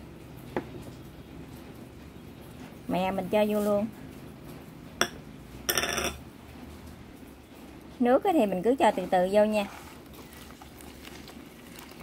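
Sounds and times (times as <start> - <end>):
ringing clink: 5.7 - 6.2.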